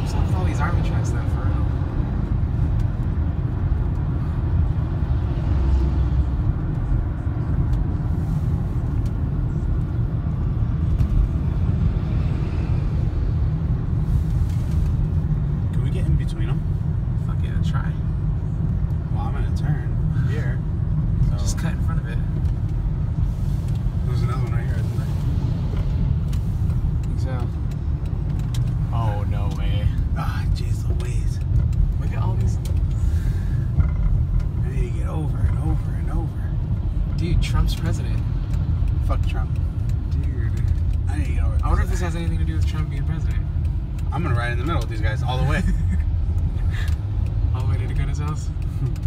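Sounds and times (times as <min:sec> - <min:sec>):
road and engine rumble in car: 0:00.0 - 0:49.0.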